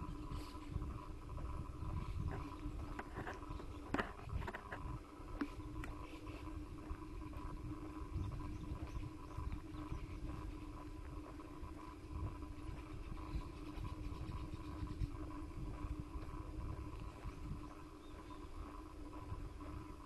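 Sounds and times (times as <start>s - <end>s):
faint steady hum: 0.0s - 20.0s
wind rumbling on microphone: 0.0s - 20.0s.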